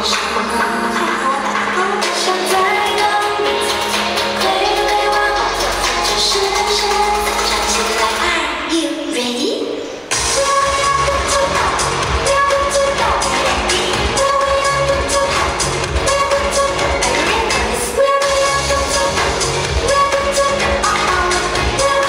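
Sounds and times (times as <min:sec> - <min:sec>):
electronic dance track: 0:00.0 - 0:09.1, 0:10.0 - 0:22.0.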